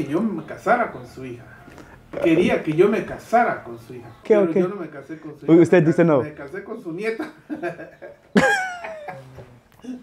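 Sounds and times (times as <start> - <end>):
man laughing: 7.2 - 10.0.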